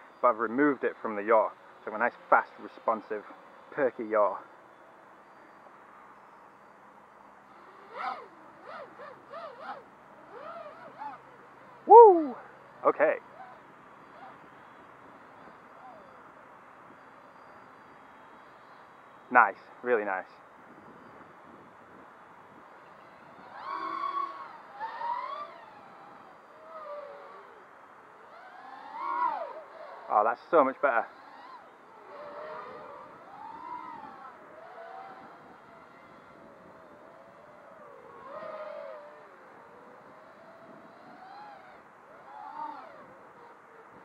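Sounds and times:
quadcopter motors revving: 0:00.0 - 0:44.0.

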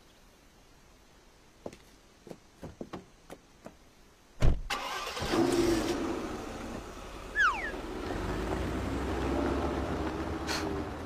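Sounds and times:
thump: 0:04.4 - 0:04.7
car engine starting and running: 0:04.7 - 0:11.0
short falling whistle-like chirp: 0:07.3 - 0:07.8.

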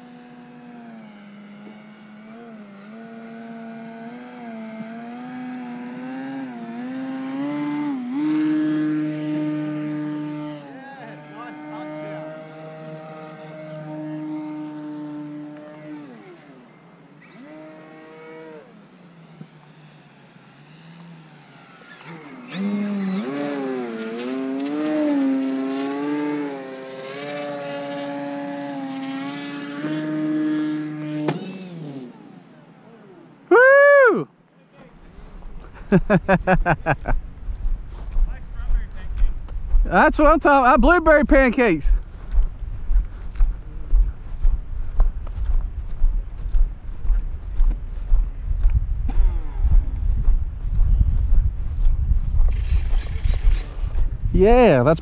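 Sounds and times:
model plane motor buzzing: 0:00.0 - 0:33.3, 0:52.4 - 0:54.3.

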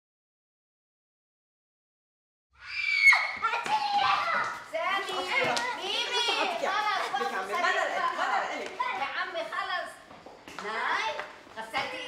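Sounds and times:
children playing and shouting: 0:02.6 - 0:12.0.

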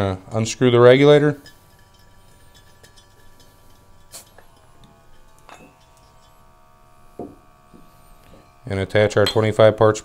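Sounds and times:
light metal clinks: 0:01.0 - 0:06.5.

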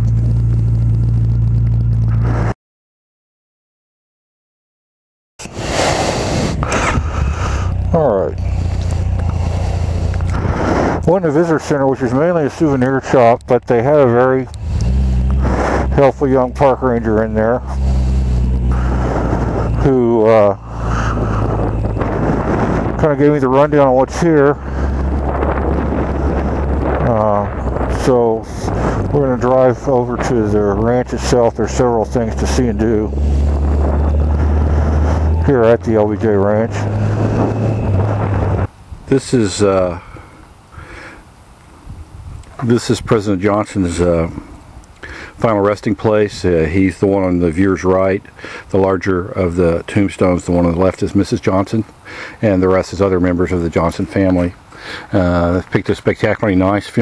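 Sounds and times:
motorcycle engine rumbling: 0:00.0 - 0:02.6, 0:05.4 - 0:57.0
loud wind noise: 0:05.4 - 0:13.5, 0:14.4 - 0:39.9, 0:41.7 - 0:43.3.

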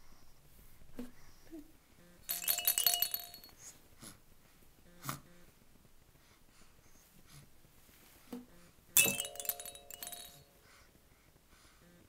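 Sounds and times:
clinking clatter with ringing tones: 0:02.3 - 0:03.7, 0:09.0 - 0:10.5.

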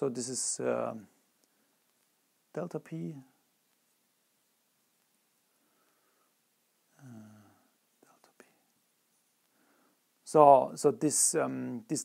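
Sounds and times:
man humming faintly: 0:06.9 - 0:08.7.

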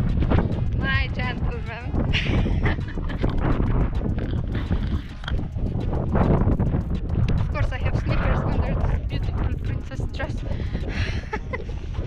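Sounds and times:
wind buffeting microphone: 0:00.0 - 0:12.0
woman's voice: 0:00.8 - 0:02.0, 0:07.5 - 0:11.5
woman laughing: 0:02.1 - 0:03.4, 0:10.9 - 0:11.9.

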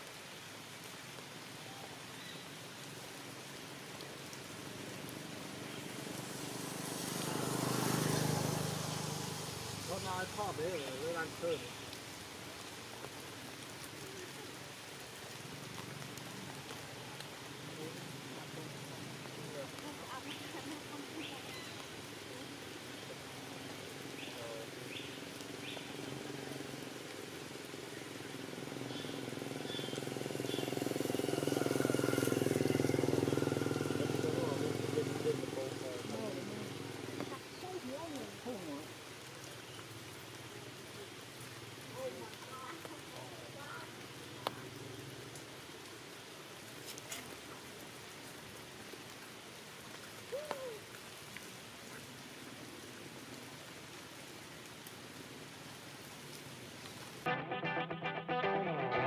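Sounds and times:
water drips: 0:00.0 - 0:57.3
rain falling on leaves: 0:00.0 - 0:59.0
engine passing by: 0:04.7 - 0:11.5, 0:28.3 - 0:37.2
wavering calls or voices: 0:50.3 - 0:50.9.

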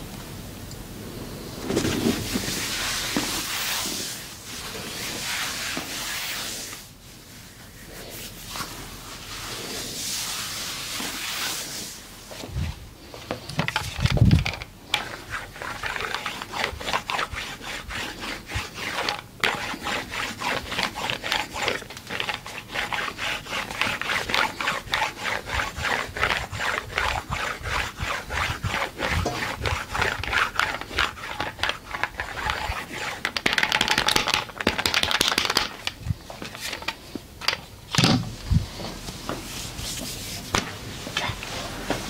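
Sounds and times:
massager rasping on skin and fabric: 0:01.6 - 0:12.8, 0:13.8 - 0:34.3.

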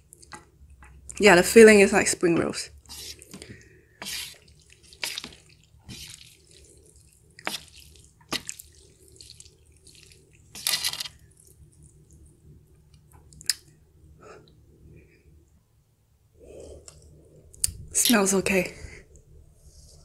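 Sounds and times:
chopsticks squelching in noodles: 0:02.8 - 0:12.3.

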